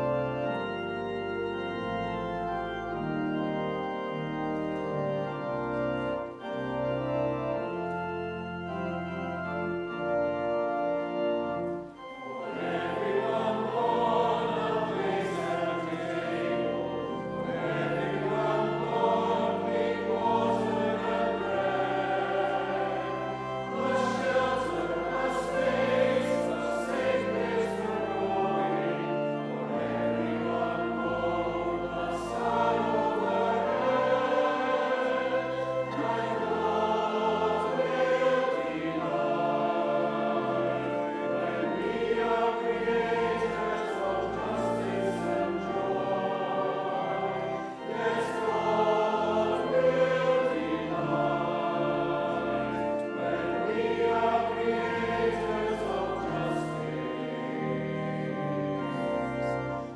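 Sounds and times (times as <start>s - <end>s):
church choir singing: 0.0s - 59.9s
organ: 0.0s - 59.9s.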